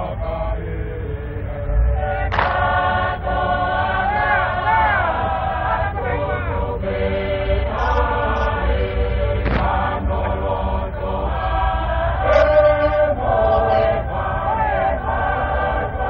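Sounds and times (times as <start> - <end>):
massed voices chanting: 0.0 - 16.0
steady low hum: 0.0 - 16.0.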